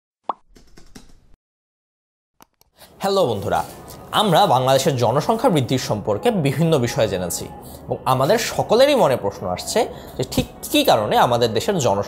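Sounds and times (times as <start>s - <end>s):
rapid keyboard typing clicks: 0.5s - 1.3s.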